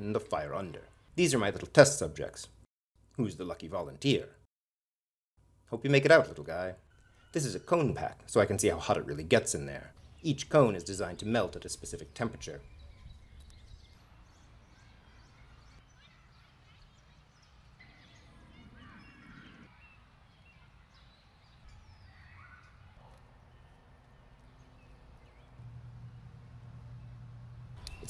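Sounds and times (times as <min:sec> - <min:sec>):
low steady hum: 0:23.0 - 0:28.0.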